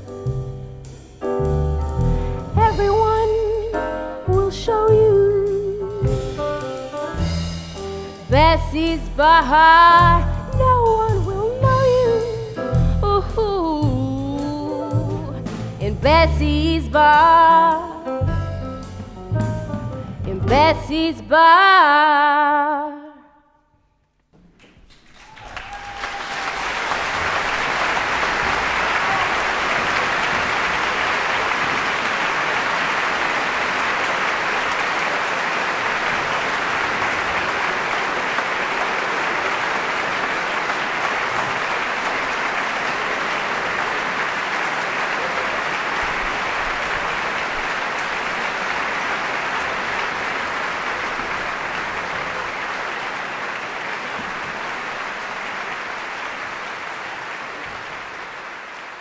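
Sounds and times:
audience applauding: 24.4 - 59.0.

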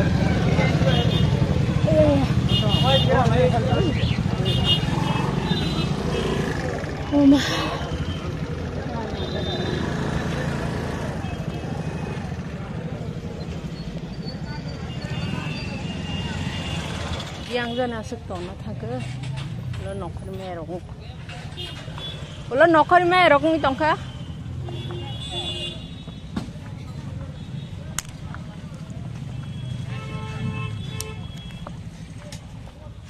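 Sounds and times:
motorcycle engines running: 0.0 - 20.2, 20.8 - 33.0.

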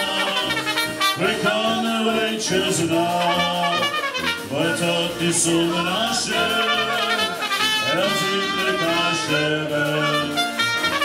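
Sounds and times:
accordion: 0.0 - 11.0
folk brass band music: 0.0 - 11.0
trumpet: 0.0 - 11.0
tuba: 0.0 - 11.0.

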